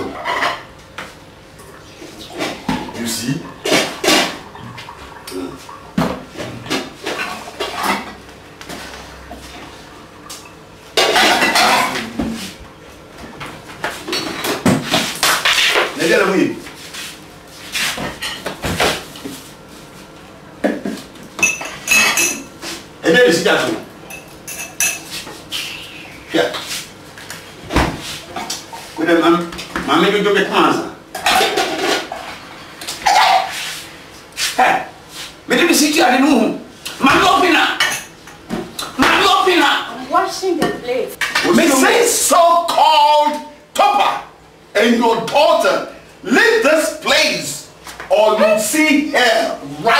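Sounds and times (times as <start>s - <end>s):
dishes and utensils clattering: 0.0s - 0.7s, 5.6s - 8.2s, 10.3s - 12.4s, 20.7s - 22.5s, 24.1s - 25.1s, 31.1s - 33.6s.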